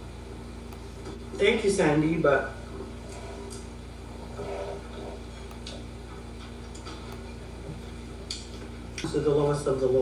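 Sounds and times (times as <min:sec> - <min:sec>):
low background hum: 0:00.0 - 0:10.0.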